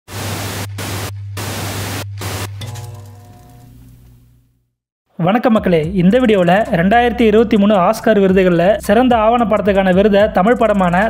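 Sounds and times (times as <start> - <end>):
television static hiss: 0.1 - 2.5.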